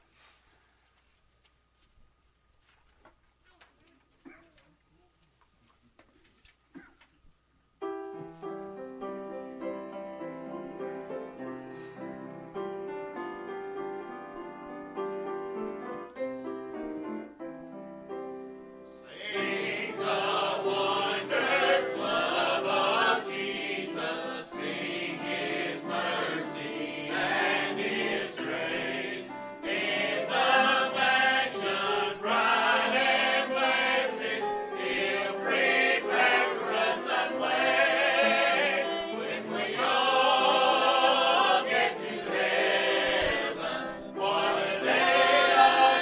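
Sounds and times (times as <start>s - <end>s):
church choir singing: 18.9s - 46.0s.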